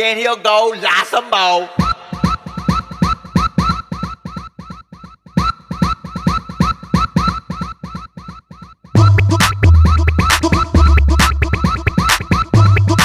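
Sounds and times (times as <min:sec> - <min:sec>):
synth stabs and drum-machine hits: 0:01.7 - 0:04.2, 0:09.0 - 0:13.0
heavy bass: 0:09.0 - 0:13.0.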